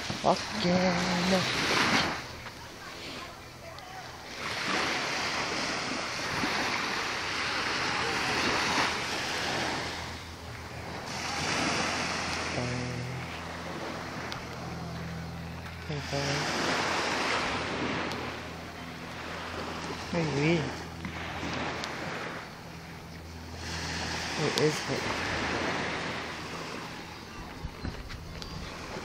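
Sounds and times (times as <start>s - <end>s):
small waves washing onto beach: 0.0s - 29.0s.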